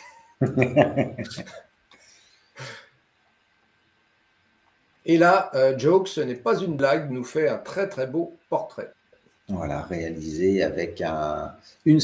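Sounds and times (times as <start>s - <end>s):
man laughing: 0.0s - 1.6s
man speaking: 5.1s - 12.0s.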